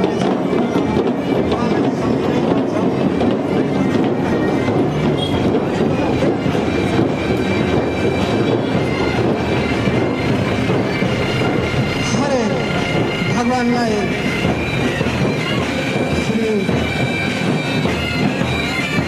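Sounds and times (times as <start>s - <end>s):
pipe band playing bagpipes: 0.0s - 19.0s
street and crowd noise: 0.0s - 19.0s
voices calling out: 0.0s - 19.0s.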